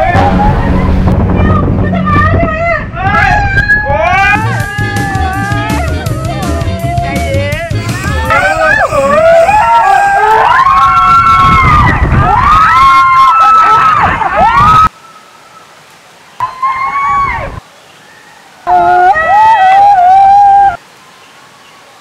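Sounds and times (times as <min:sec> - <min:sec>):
rushing water: 0:00.0 - 0:22.0
people screaming: 0:01.4 - 0:07.2, 0:07.8 - 0:15.0, 0:16.4 - 0:20.8.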